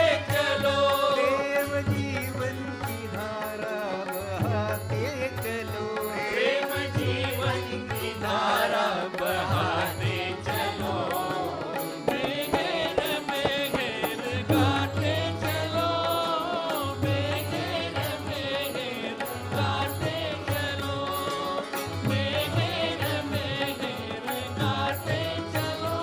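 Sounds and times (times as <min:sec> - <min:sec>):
devotional chanting: 0:00.0 - 0:26.0
light percussion: 0:00.0 - 0:26.0.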